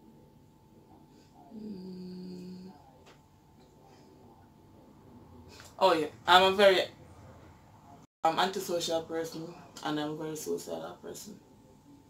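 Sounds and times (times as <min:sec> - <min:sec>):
woman humming: 0:01.4 - 0:02.9.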